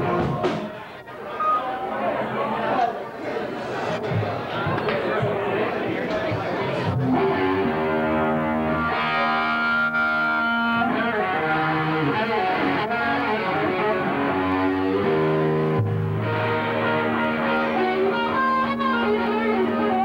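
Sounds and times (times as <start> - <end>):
distorted electric guitars: 0.0 - 0.9, 6.3 - 20.0
crowd chatter: 0.0 - 20.0.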